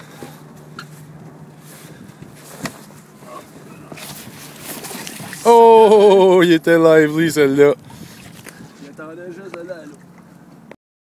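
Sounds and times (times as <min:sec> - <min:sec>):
fish thrashing and water splashing: 0:00.0 - 0:06.6, 0:07.7 - 0:08.8.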